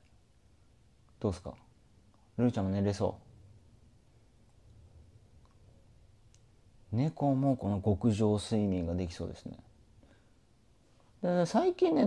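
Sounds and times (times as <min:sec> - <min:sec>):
man speaking: 0:01.2 - 0:01.7, 0:02.4 - 0:03.2, 0:06.9 - 0:09.7, 0:11.2 - 0:12.0
faint clicks: 0:06.3 - 0:06.5.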